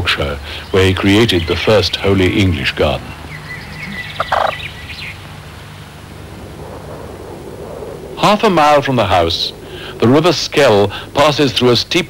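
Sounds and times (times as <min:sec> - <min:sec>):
birds chirping: 0:00.0 - 0:12.0
low steady hum: 0:00.0 - 0:12.0
rapid-pulsed bird call: 0:03.1 - 0:06.3.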